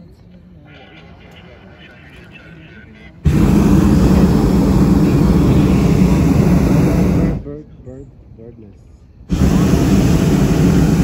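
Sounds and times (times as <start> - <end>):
propane burner roaring: 3.2 - 7.6, 9.3 - 11.0.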